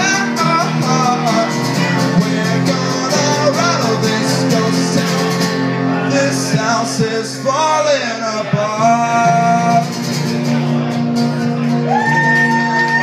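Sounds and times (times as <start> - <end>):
man singing: 0.0 - 11.8
acoustic guitar: 0.0 - 13.0.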